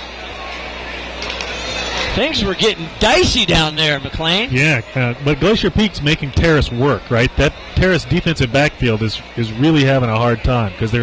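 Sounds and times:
distant crowd sound: 0.0 - 11.0.

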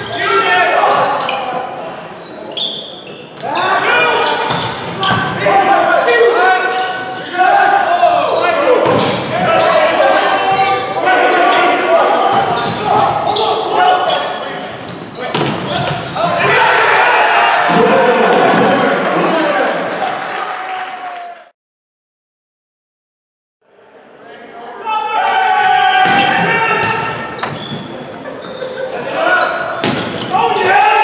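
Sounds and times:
people shouting in a gym: 3.4 - 14.6, 15.2 - 18.7, 24.8 - 28.0, 28.7 - 31.0.

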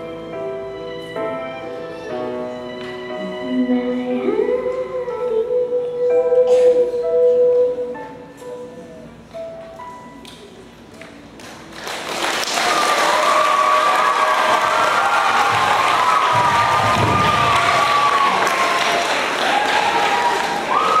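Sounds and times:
audience applause and cheering: 11.6 - 21.0
high shouted voices: 12.6 - 21.0.

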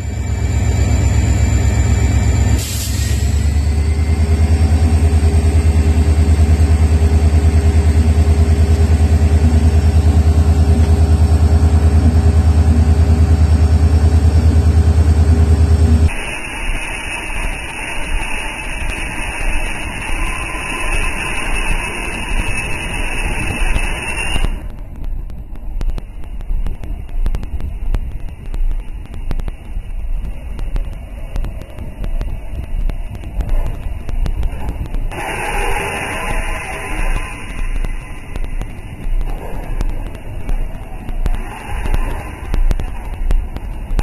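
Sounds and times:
locomotive engine idling: 0.0 - 16.1
train running rumble: 0.0 - 44.0.

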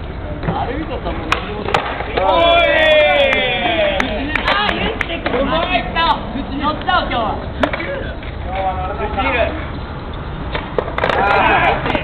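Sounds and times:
skateboard clacks: 0.4 - 5.9, 7.6 - 8.7, 10.4 - 12.0
onlookers shouting: 2.2 - 4.8.

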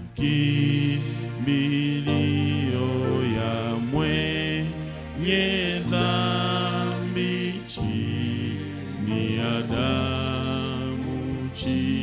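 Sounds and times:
man singing a hymn: 0.0 - 12.0.

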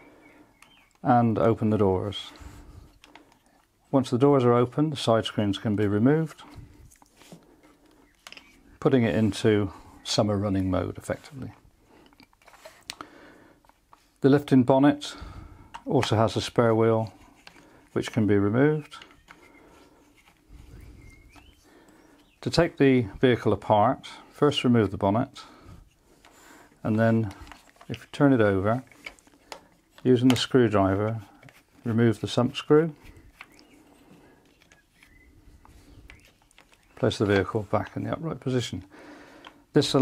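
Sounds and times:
light wooden clicks: 33.0 - 40.0.

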